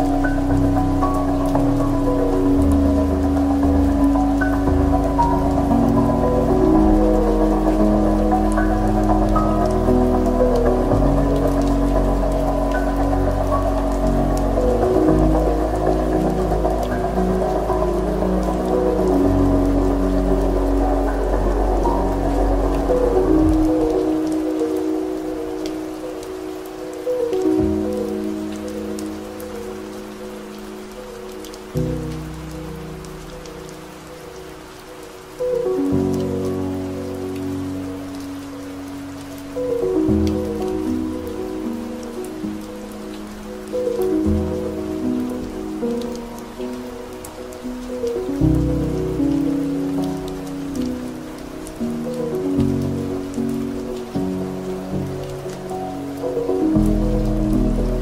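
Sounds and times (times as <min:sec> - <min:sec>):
slow soft piano music: 0:00.0 - 0:58.0
steady rain: 0:00.0 - 0:58.0
raindrop taps: 0:31.3 - 0:58.0.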